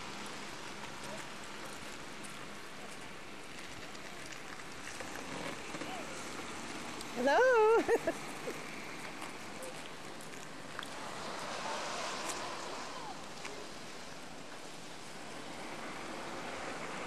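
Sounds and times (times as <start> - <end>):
outdoor background hiss: 0.0 - 17.0.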